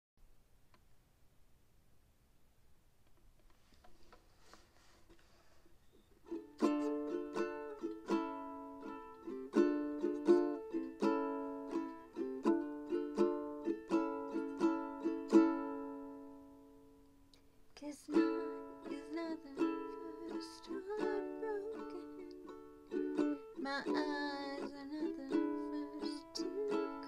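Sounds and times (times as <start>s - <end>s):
ukulele strumming chords: 6.2s - 17.0s, 18.1s - 27.0s.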